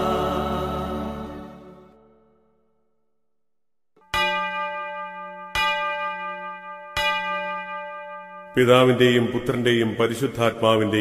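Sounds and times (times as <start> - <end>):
bell ringing: 4.0 - 9.6.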